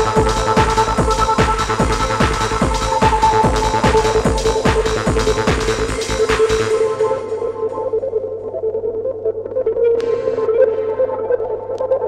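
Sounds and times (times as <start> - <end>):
kick drum and percussion: 0.0 - 7.2.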